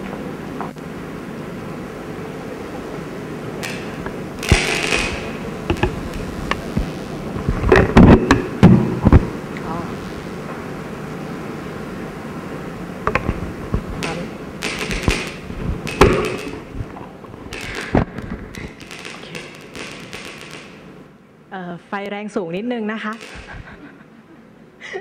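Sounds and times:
room hum: 0.0 - 25.0.

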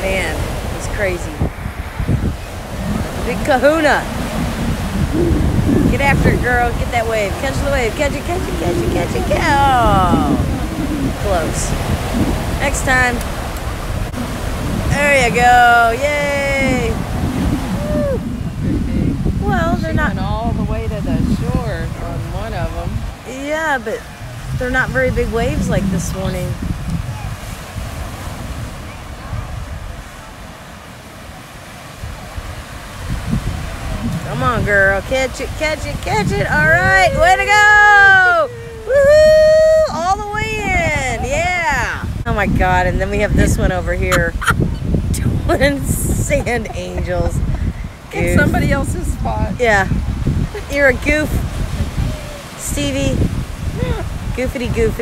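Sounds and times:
faint voices: 0.0 - 11.8, 33.8 - 49.9, 50.5 - 55.0
ocean surf breaking: 0.0 - 55.0
wind rumbling on microphone: 0.0 - 55.0
person calling out: 36.4 - 41.3, 53.7 - 54.2.

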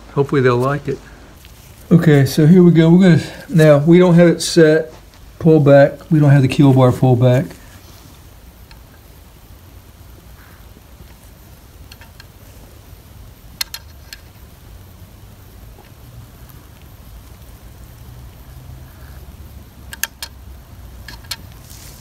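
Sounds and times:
low steady hum: 0.0 - 22.0
small sharp clicks: 11.8 - 12.4, 13.5 - 14.4, 19.8 - 21.7.

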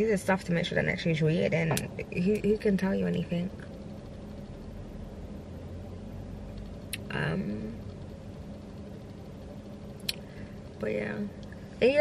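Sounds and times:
low hum inside parked car: 0.0 - 12.0.

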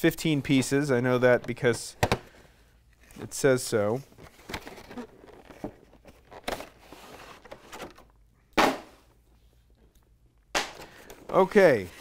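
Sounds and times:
plastic packaging rustling: 4.1 - 8.1.

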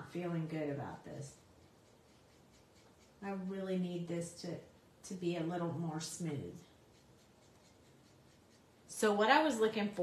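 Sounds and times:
marker nib scratching on card: 1.3 - 3.4, 6.6 - 8.9.

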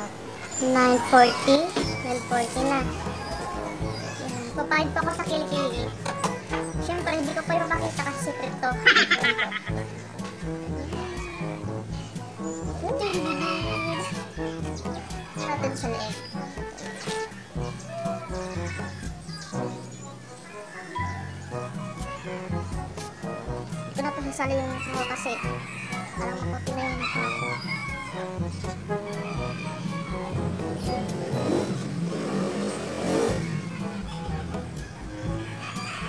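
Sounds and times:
background music with beat: 1.8 - 19.6, 21.5 - 32.1, 33.0 - 36.0
rooster crowing: 13.0 - 14.3, 26.8 - 28.4, 29.1 - 30.3, 34.8 - 36.0.

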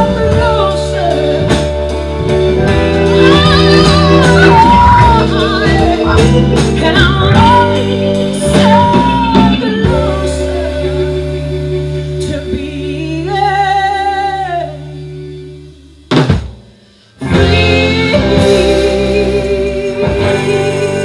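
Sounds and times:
woman singing: 0.0 - 16.0, 17.2 - 21.0
blues band playing: 0.0 - 21.0.

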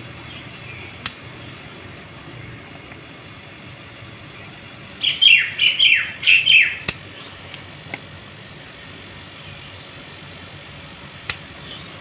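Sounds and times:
bird calling falling notes: 5.0 - 6.9
sharp click: 6.8 - 7.6, 11.2 - 11.5.

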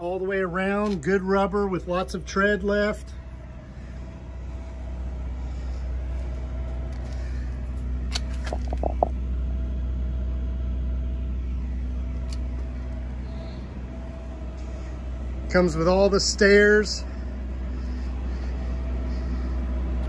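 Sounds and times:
faint machine hum: 0.0 - 20.0
low rumble: 0.0 - 20.0.

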